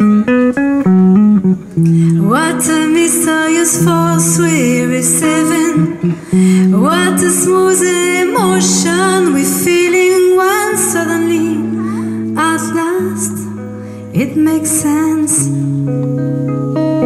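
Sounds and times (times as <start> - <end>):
electric guitar: 0.0 - 17.0
woman singing: 2.1 - 15.8.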